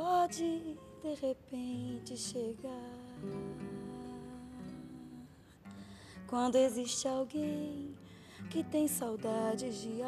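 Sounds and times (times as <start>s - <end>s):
classical guitar bossa nova: 0.0s - 10.0s.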